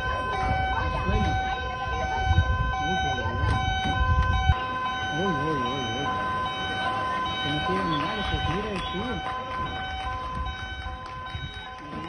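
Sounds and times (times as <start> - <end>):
two-tone siren: 0.0 - 12.0.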